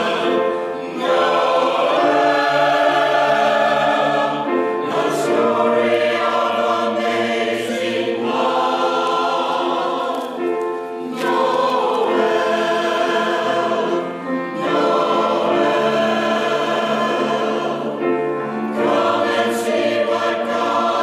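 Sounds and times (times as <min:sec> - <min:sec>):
choir breaths: 0:00.0 - 0:21.0
mixed choir singing in harmony: 0:00.0 - 0:21.0.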